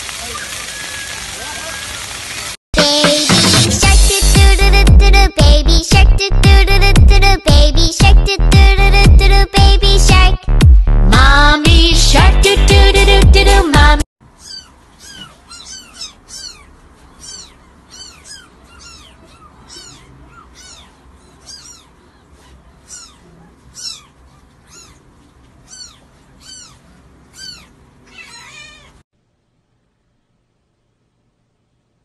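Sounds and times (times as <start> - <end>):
loud music: 2.8 - 5.1
kittens mewing: 14.3 - 29.0.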